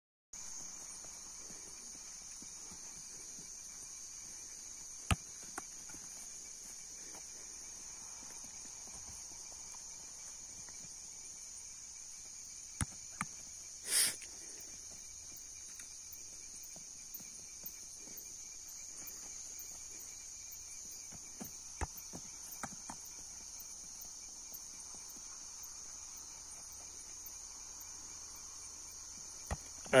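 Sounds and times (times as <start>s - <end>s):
night insects chorus: 0.4s - 30.0s.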